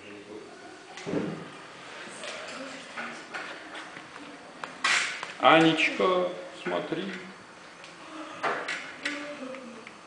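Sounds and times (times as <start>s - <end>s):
faint indistinct voices: 0.0s - 10.0s.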